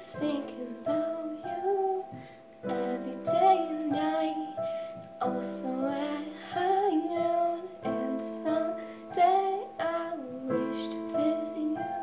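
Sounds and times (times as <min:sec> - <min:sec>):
girl singing a ballad: 0:00.0 - 0:12.0
piano chords: 0:00.0 - 0:12.0.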